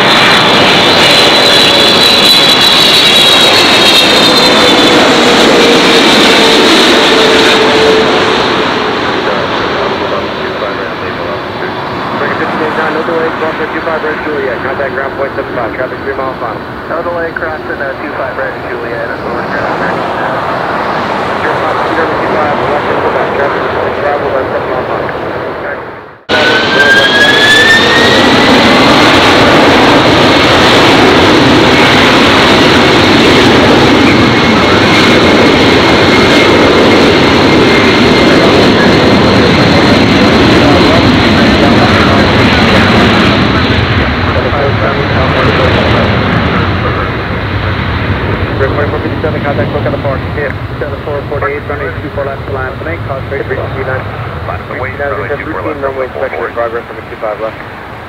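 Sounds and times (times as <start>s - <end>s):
jet engines spooling up and roaring: 0.0s - 58.0s.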